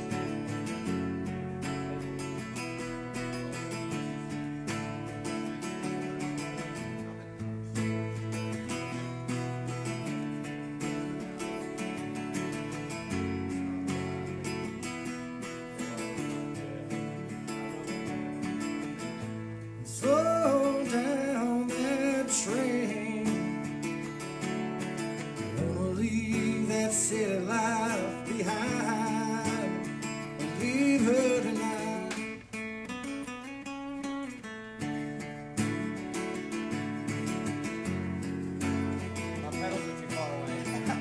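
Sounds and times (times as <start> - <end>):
strummed acoustic guitar: 0.0 - 41.0
man singing into a microphone: 19.8 - 24.0, 25.4 - 32.5.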